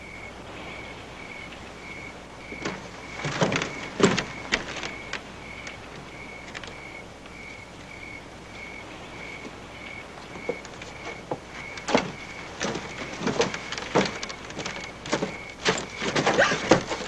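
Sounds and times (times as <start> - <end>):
footsteps on dirt street: 9.2 - 17.0.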